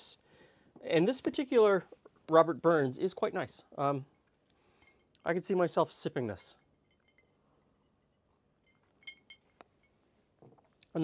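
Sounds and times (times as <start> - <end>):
ice cube clinking in glass: 6.6 - 9.9.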